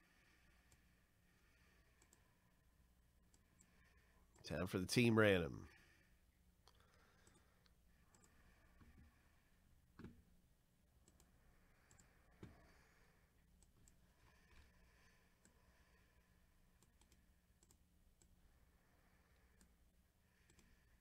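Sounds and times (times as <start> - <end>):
computer mouse clicks: 0.6 - 0.9, 1.9 - 2.2, 3.3 - 4.4, 6.6 - 9.1, 10.0 - 10.2, 11.0 - 12.7, 13.6 - 14.8, 16.8 - 18.4, 19.4 - 19.8, 20.4 - 20.9.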